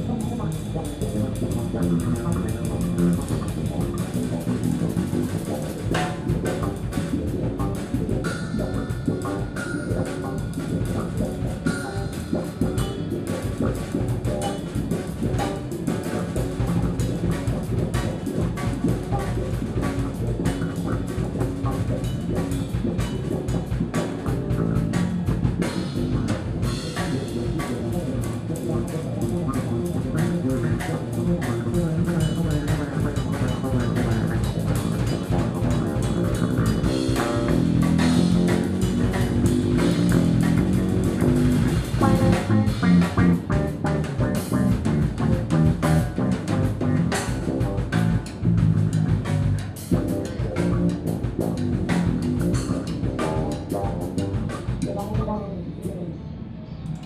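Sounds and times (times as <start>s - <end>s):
drum kit with cymbals: 0.0s - 56.0s
electric bass guitar: 0.0s - 57.0s.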